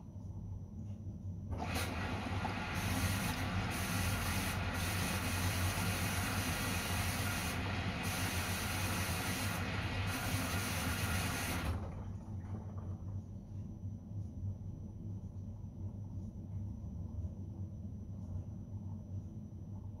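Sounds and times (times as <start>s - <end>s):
low even hum: 0.0s - 20.0s
water rushing into washing machine: 1.5s - 13.1s.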